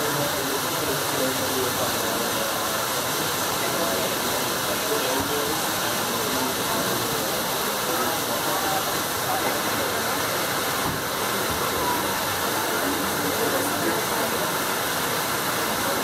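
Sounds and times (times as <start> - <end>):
faint indistinct voices: 0.0 - 16.0.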